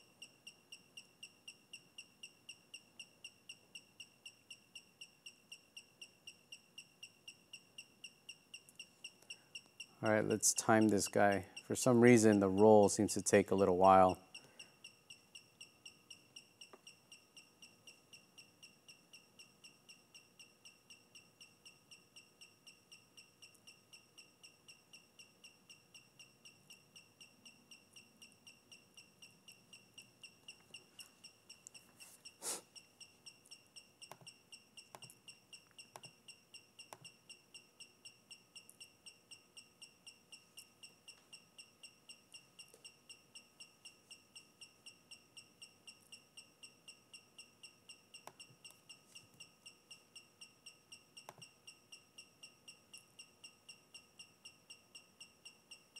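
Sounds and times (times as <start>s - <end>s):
sharp click: 51.2s - 51.5s.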